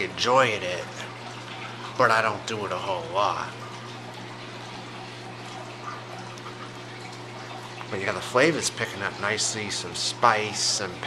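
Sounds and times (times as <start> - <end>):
steady background hum with hiss: 0.0 - 11.0.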